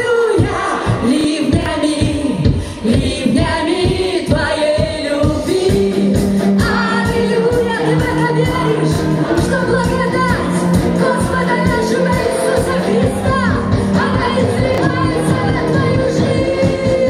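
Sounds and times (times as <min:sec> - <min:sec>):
woman singing worship song: 0:00.0 - 0:17.0
electric bass guitar: 0:06.0 - 0:17.0.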